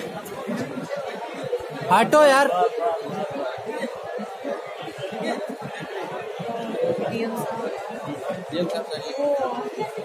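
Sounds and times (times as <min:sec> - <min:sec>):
chatter of people in a hall: 0:00.0 - 0:10.0.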